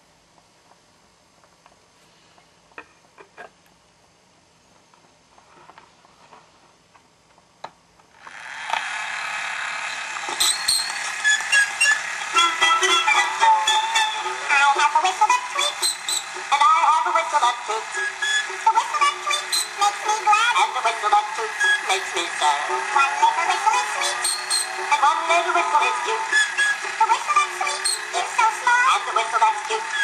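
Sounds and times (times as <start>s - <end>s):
record surface hiss: 0.0s - 8.3s
crackly gramophone music: 10.2s - 30.0s.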